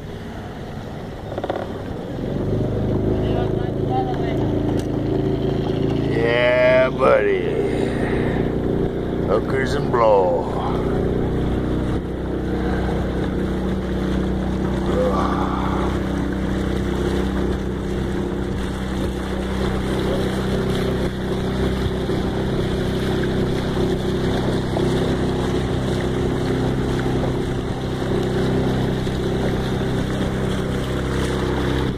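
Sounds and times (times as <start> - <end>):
motorboat engine running: 0.0 - 31.9.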